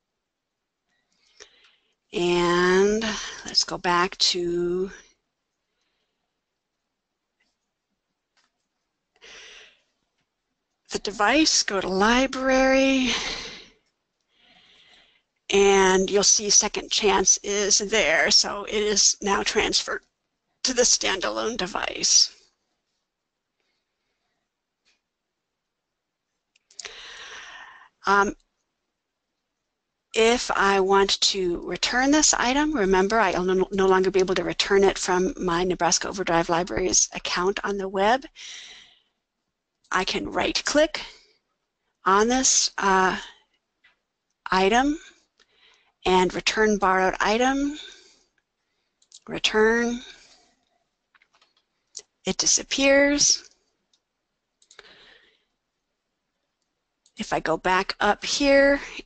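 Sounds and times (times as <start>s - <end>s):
small clicks: 7.4s - 8.9s, 50.5s - 52.2s, 53.4s - 54.9s
intake of breath: 14.4s - 15.3s.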